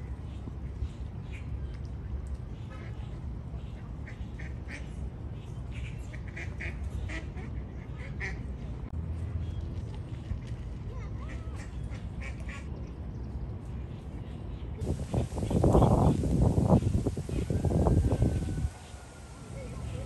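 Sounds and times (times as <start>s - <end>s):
steady low rumble: 14.8s - 20.0s.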